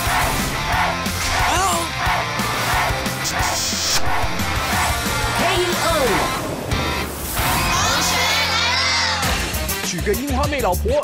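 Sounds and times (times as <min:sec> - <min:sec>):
upbeat music with driving beat: 0:00.0 - 0:11.0.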